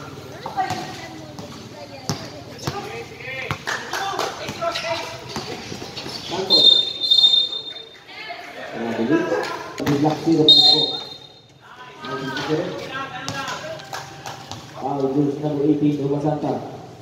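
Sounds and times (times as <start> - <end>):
voices calling out: 0.0 - 14.7
ball bouncing on concrete: 0.4 - 6.3, 12.8 - 14.8
referee's whistle blast: 6.5 - 7.9, 10.5 - 11.5.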